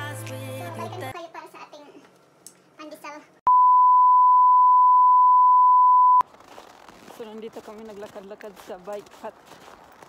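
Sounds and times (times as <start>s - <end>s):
long electronic beep: 3.5s - 6.2s.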